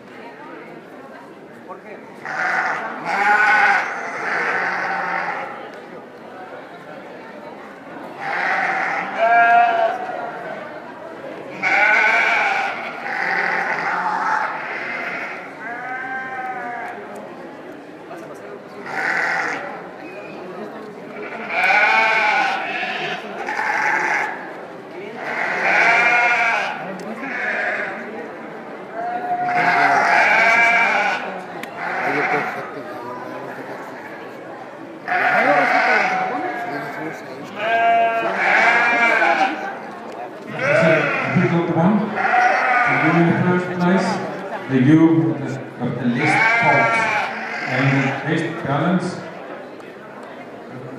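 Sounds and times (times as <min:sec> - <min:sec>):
sheep bleating: 0:02.2 - 0:05.6, 0:08.2 - 0:10.1, 0:11.5 - 0:17.0, 0:18.8 - 0:19.7, 0:21.2 - 0:24.4, 0:25.2 - 0:28.1, 0:29.0 - 0:32.7, 0:35.0 - 0:39.7, 0:40.5 - 0:43.5, 0:46.1 - 0:48.2.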